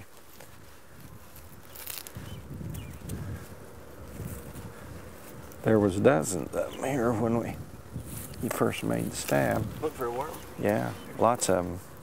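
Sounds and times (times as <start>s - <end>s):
rustling of dry corn residue: 0.0s - 12.0s
wind rumble on microphone: 0.4s - 12.0s.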